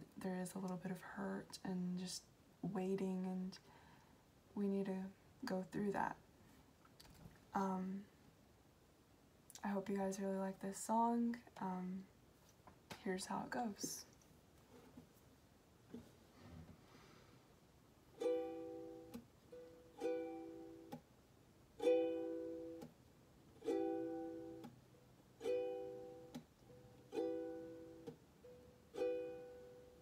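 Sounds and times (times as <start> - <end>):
ukulele chords strummed: 18.1 - 21.0, 21.8 - 30.0.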